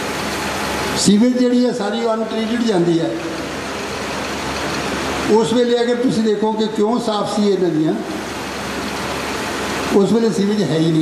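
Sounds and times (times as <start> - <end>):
man talking: 1.0 - 3.3, 5.3 - 8.1, 9.9 - 11.0.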